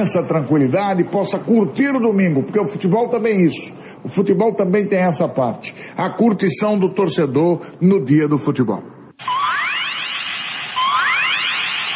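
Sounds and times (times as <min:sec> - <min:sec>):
electronic hiss with rising sweeps: 0:09.2 - 0:11.9.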